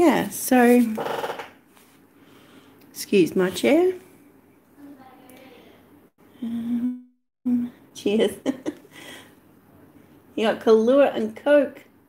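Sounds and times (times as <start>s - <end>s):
chair creaking: 0.8s - 1.6s.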